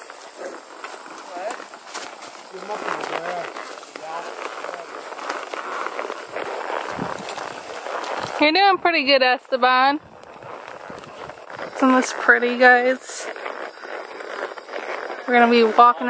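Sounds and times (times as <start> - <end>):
horse hooves walking: 0.0 - 16.0.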